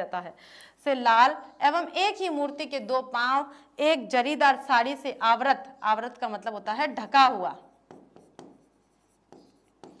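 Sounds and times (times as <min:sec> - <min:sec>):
stylus strokes and taps: 0:07.6 - 0:10.0.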